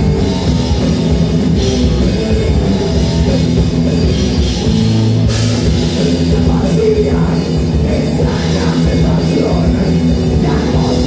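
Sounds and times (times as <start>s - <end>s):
distorted electric guitars: 0.0s - 11.0s
drum kit: 0.0s - 11.0s
electric bass: 0.0s - 11.0s.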